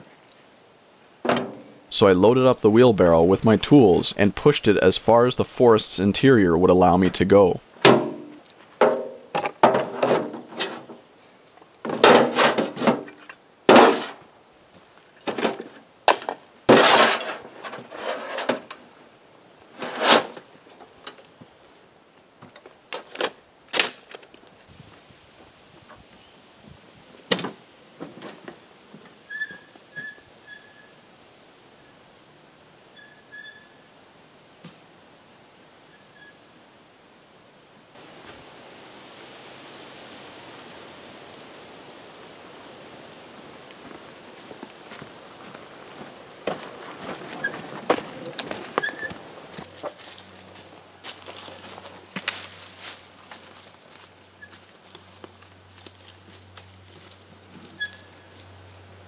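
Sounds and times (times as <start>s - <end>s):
tools clattering into steel wheelbarrow: 7.8s - 11.0s, 11.8s - 14.2s, 15.2s - 18.8s, 51.0s - 51.3s.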